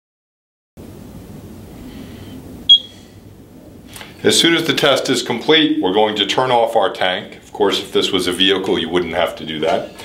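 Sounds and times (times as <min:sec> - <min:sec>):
low room hum: 0:00.8 - 0:10.0
faint brief tone: 0:02.7 - 0:03.0
high-pitched electronic beep: 0:02.7 - 0:03.0.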